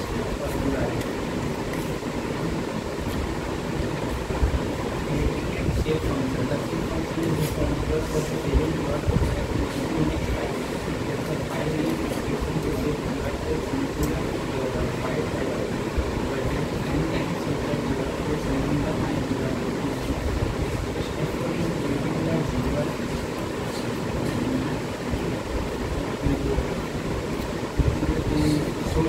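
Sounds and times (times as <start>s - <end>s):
indistinct talking: 0.0s - 29.0s
low room hum: 0.0s - 29.0s.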